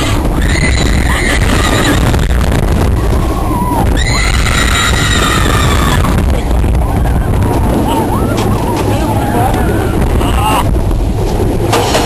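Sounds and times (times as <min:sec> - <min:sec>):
roller coaster rumbling on wooden track: 0:00.0 - 0:12.0.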